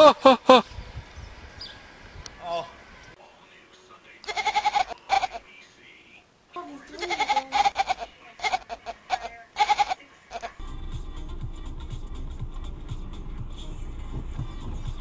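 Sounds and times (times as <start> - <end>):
kitten meowing: 7.0 - 8.6
steady low rumble: 10.6 - 15.0.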